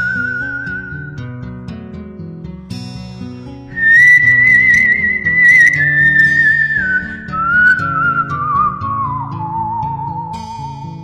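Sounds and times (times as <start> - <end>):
whistle-like melody: 0.0 - 1.3, 3.7 - 11.0.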